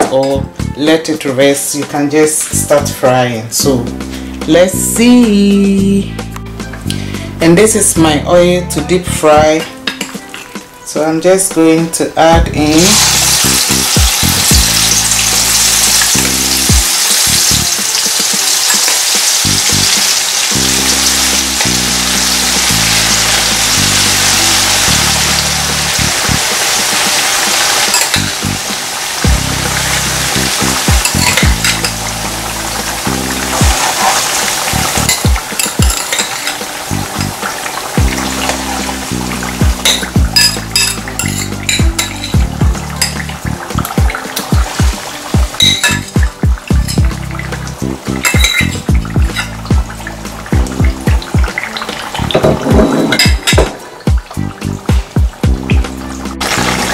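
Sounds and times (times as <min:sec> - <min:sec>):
background music: 0:00.0 - 0:56.9
food deep-frying in oil: 0:12.7 - 0:56.9.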